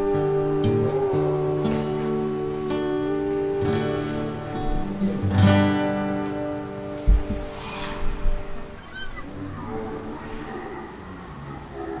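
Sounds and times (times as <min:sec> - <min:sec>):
acoustic guitar chord: 0:00.0 - 0:08.8
low thumps: 0:06.9 - 0:10.4.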